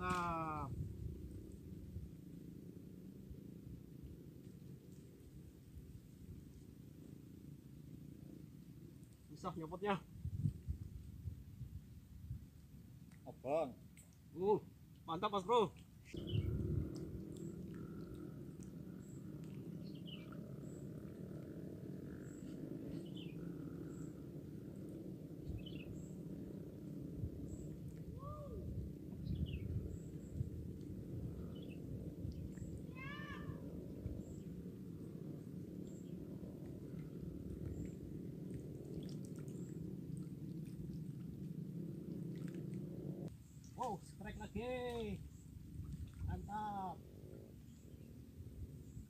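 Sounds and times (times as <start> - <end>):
low rumble: 0.0 - 12.5, 16.1 - 43.5
faint bird chirps: 16.0 - 16.6, 17.3 - 21.2, 22.0 - 24.3.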